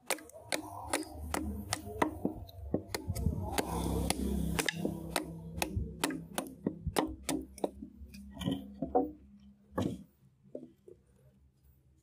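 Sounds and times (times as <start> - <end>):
billhook chopping bamboo: 0.0 - 7.9.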